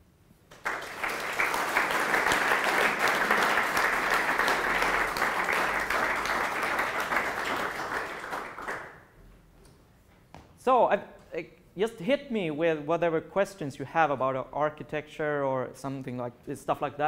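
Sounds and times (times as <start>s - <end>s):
audience applauding: 0.5s - 9.0s.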